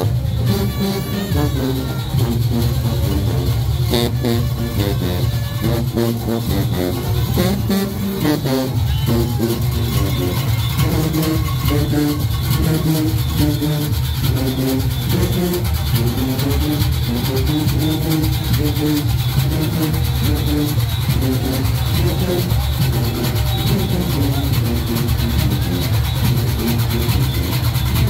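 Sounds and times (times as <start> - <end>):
brass horns melody: 0.0 - 28.0
dense steady drum beat: 0.0 - 28.0.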